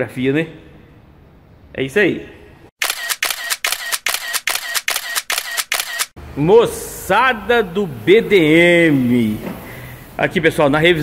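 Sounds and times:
camera shutter clicking: 0:02.8 - 0:06.2.

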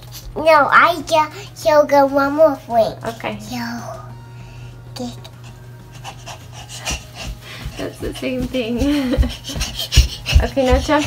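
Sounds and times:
steady low hum: 0:00.0 - 0:11.0
soft rustling and rubbing: 0:07.0 - 0:11.0.

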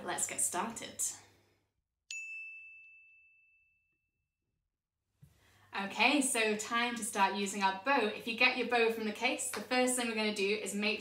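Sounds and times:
high bell-like ding: 0:02.1 - 0:04.0.

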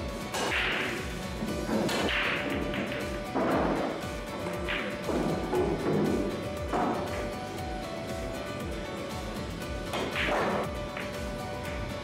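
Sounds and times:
background music with beat: 0:00.0 - 0:12.0
cue striking cue ball: 0:00.4 - 0:07.3, 0:09.9 - 0:11.2
cue ball smashing into rack: 0:01.7 - 0:04.0, 0:09.9 - 0:11.2.

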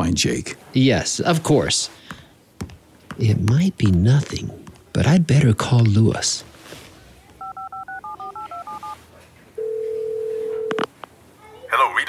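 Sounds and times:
telephone keypad dialing beeps: 0:07.4 - 0:09.0, 0:09.6 - 0:10.9.

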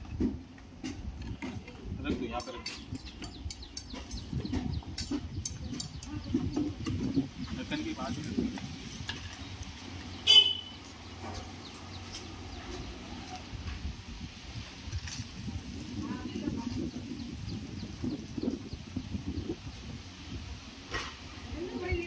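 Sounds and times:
people talking: 0:01.6 - 0:02.8, 0:04.3 - 0:08.7, 0:15.9 - 0:17.3, 0:21.5 - 0:22.0.

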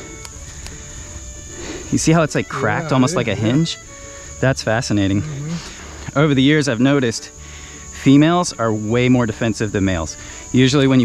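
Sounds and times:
insects chirring: 0:00.0 - 0:11.0
faint clicks: 0:00.2 - 0:00.8.

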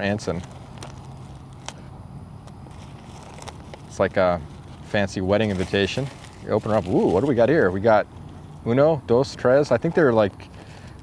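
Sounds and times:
paper handling: 0:00.0 - 0:08.5
low background rumble: 0:00.0 - 0:11.0.

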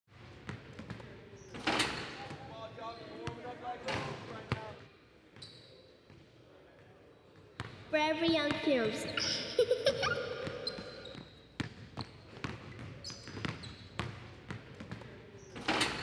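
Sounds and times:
voices: 0:08.0 - 0:11.2
basketball bouncing on gym floor: 0:10.4 - 0:15.7.

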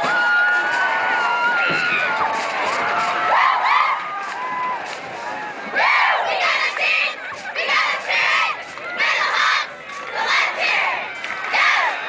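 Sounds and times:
cheerleaders shouting in unison: 0:00.1 - 0:12.0.

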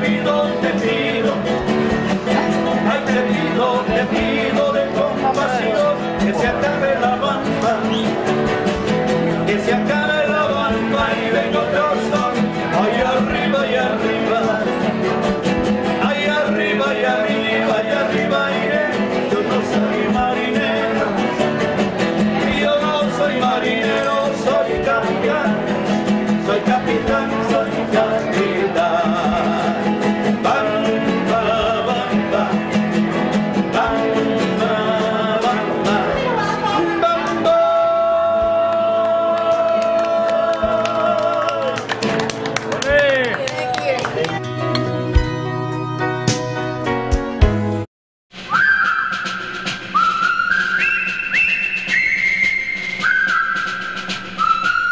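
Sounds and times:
man singing with vibrato: 0:00.0 - 0:41.9
acoustic guitars strummed: 0:00.0 - 0:43.2, 0:44.0 - 0:47.9
person whistling a tune: 0:48.4 - 0:54.9.

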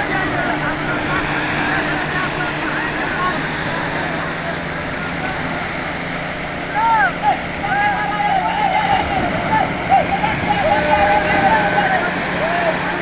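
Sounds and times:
fishermen calling out: 0:00.0 - 0:13.0
surf washing over shallows: 0:00.0 - 0:13.0.

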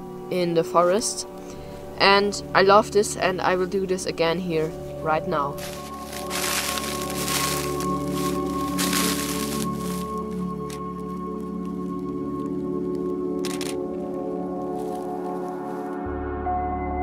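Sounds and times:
music of sustained tones: 0:00.0 - 0:17.0
frozen leaves crunching underfoot: 0:05.6 - 0:16.0.

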